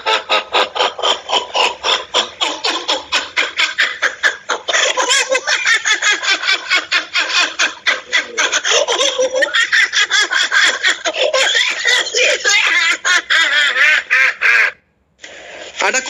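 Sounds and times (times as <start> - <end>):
woman laughing in rhythmic bursts: 0.0 - 14.8.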